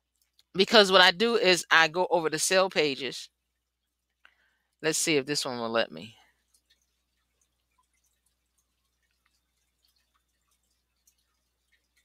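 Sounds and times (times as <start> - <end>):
faint ticks: 0.0 - 0.6, 3.5 - 4.8, 6.2 - 12.0.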